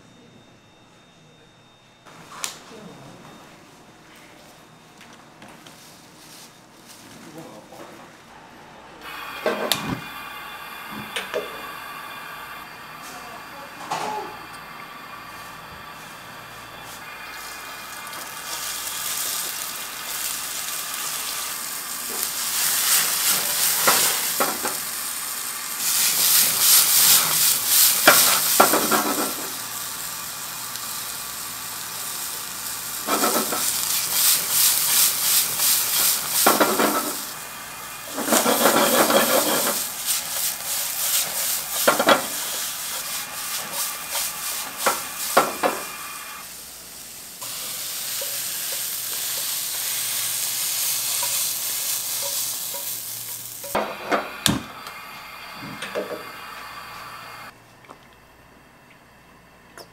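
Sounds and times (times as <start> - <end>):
steady hiss: 9.0 - 57.5
stir-fry sizzling in a wok: 9.0 - 57.5.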